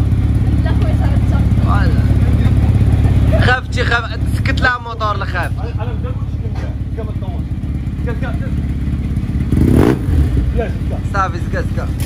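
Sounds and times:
motorcycle engine running: 0:00.0 - 0:12.0
people talking: 0:00.4 - 0:08.6, 0:10.5 - 0:12.0.

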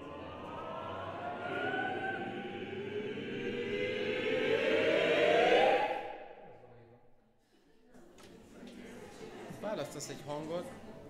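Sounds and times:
choir holding dense cluster chord: 0:00.0 - 0:06.6.

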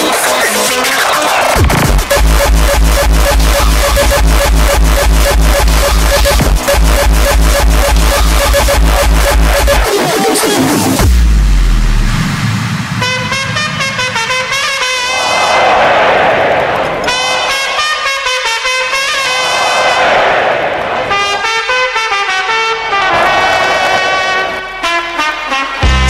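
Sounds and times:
distorted kick-drum beat: 0:00.0 - 0:13.7
low bass swoop: 0:01.6 - 0:09.8, 0:11.0 - 0:14.6
high synth melody: 0:01.6 - 0:12.3.

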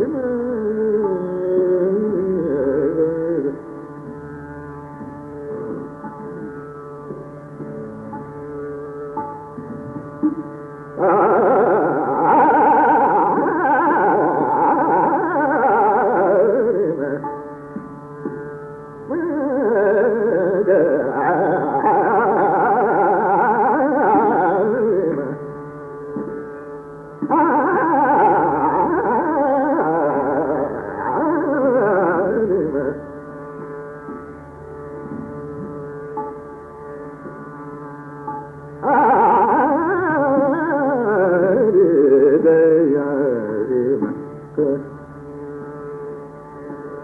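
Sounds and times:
steady drone: 0:02.1 - 0:47.0.

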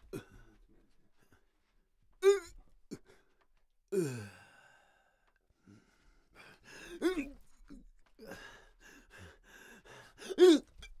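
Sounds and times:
man panting: 0:08.2 - 0:10.4.

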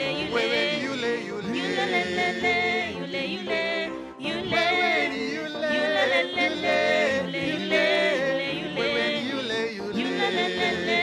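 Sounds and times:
choir singing gospel in harmony: 0:00.0 - 0:11.0
keyboard accompaniment: 0:00.0 - 0:11.0.

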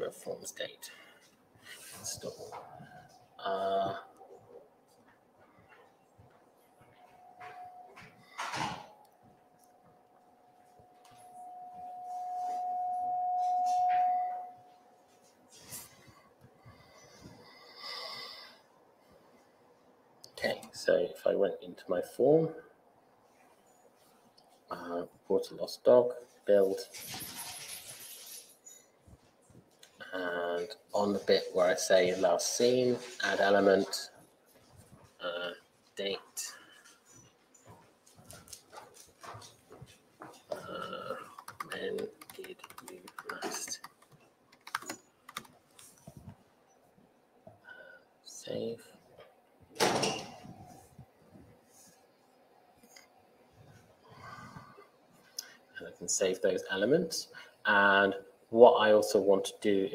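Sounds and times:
steady ringing tone: 0:06.7 - 0:16.2.

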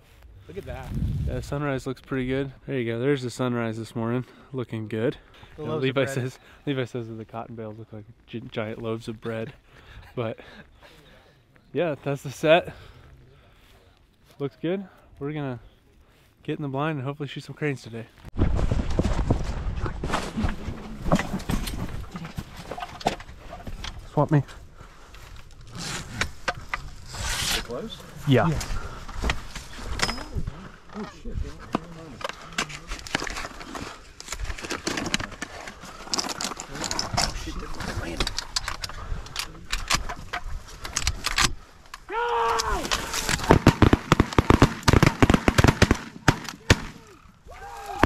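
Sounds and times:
dry grass rustling and crackling: 0:00.0 - 0:02.4, 0:18.0 - 0:48.0.

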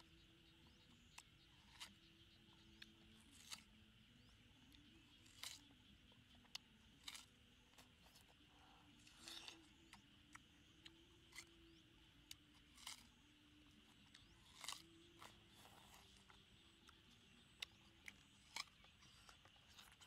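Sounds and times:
watermelon rind crunching: 0:00.0 - 0:20.0.

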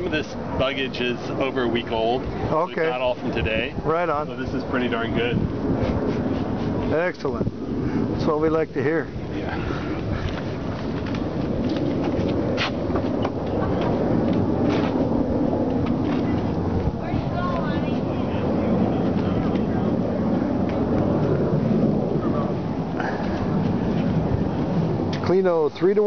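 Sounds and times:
low outdoor rumble: 0:00.0 - 0:26.0.

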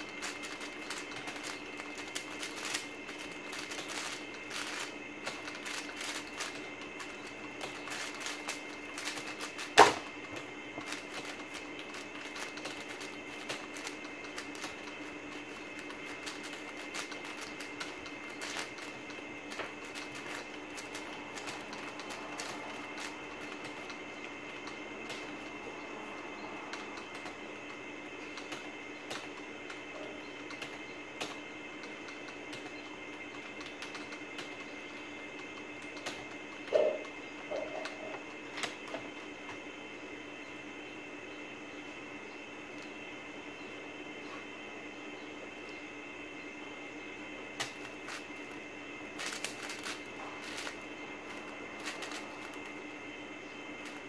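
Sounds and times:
steady background hum: 0:00.0 - 0:54.0.

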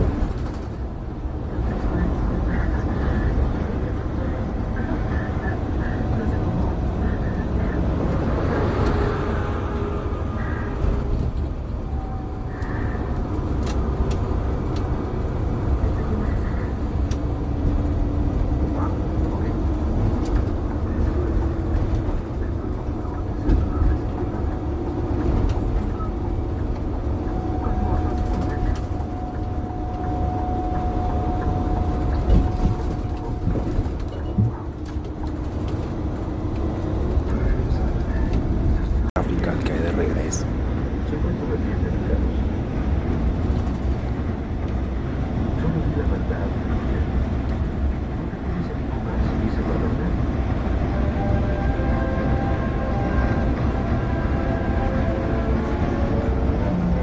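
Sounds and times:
engine and tyres rumbling: 0:00.0 - 0:57.0.

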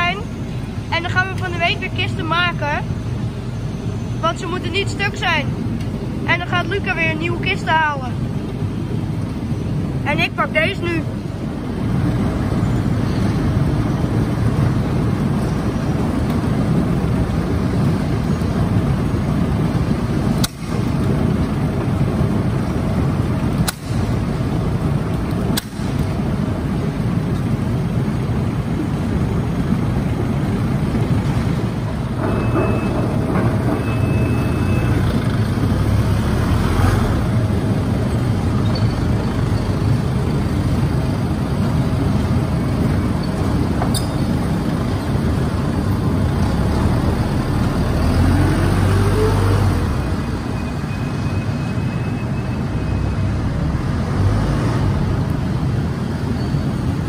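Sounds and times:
forklift engine running: 0:00.0 - 0:51.8
steady machinery noise: 0:00.0 - 0:57.0
rising hydraulic whine: 0:31.5 - 0:37.4.

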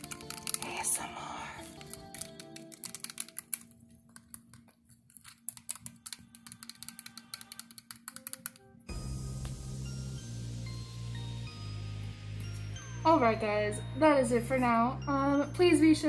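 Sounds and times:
zipper teeth clicking rattle: 0:00.0 - 0:08.7
faint music: 0:00.0 - 0:16.0.

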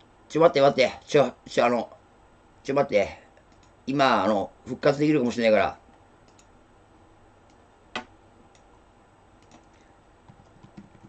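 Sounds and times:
keyboard typing: 0:09.4 - 0:11.0.

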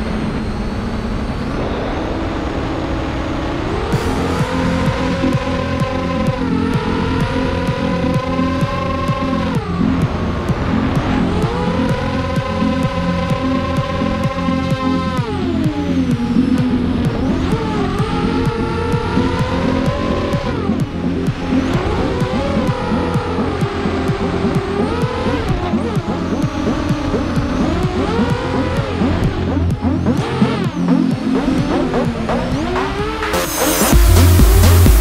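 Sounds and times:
faint music: 0:00.0 - 0:35.0
quadcopter motors whining: 0:00.0 - 0:35.0.

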